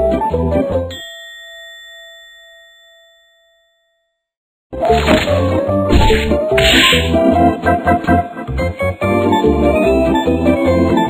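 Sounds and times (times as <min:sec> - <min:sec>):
background music: 0:04.8 - 0:11.0.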